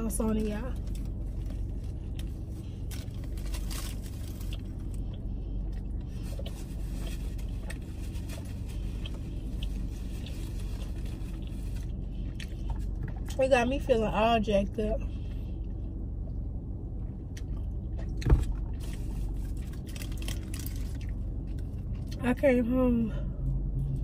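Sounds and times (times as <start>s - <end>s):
steady low hum: 0.0s - 24.0s
biting and chewing food: 0.8s - 13.4s, 15.3s - 22.2s
food crunching: 0.8s - 13.4s, 17.0s - 22.2s
paper wrapper rustling: 2.9s - 4.6s, 18.9s - 21.0s.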